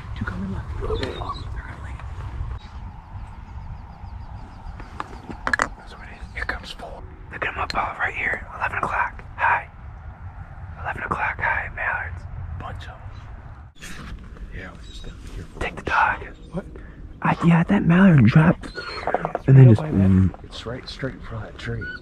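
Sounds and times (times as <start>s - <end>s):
wind rumble on microphone: 0.0s - 17.5s
hushed whispering voices: 0.2s - 2.8s, 5.6s - 9.7s, 10.7s - 13.2s, 14.5s - 22.0s.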